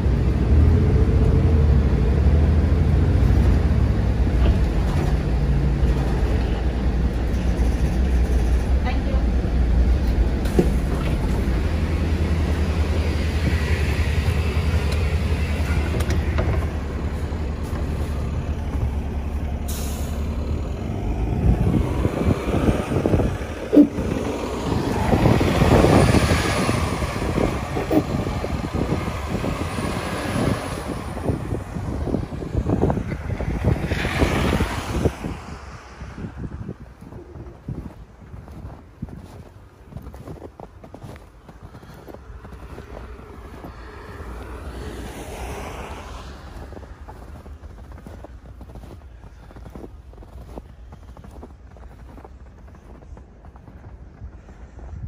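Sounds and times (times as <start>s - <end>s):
bus engine humming: 0.0s - 55.0s
knocks and rustles: 15.6s - 17.0s.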